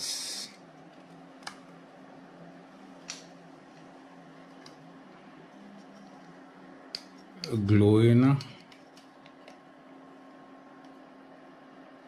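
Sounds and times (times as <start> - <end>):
cooling fan hum: 0.0 - 12.0.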